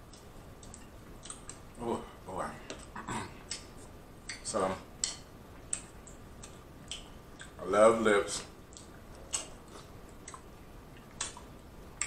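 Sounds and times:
wet clicks from eating: 0:00.0 - 0:01.6, 0:02.7 - 0:04.4, 0:05.0 - 0:07.6, 0:08.7 - 0:12.0.

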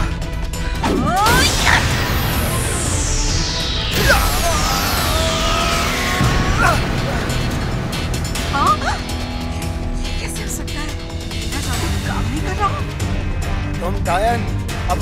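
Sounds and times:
cartoon action background score: 0:00.0 - 0:15.0
descending whoosh effects: 0:00.6 - 0:10.0.

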